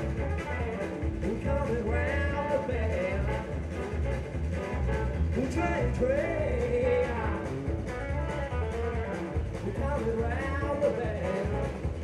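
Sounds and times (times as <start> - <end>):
electric guitar: 0.0 - 12.0
live rock band playing: 0.0 - 12.0.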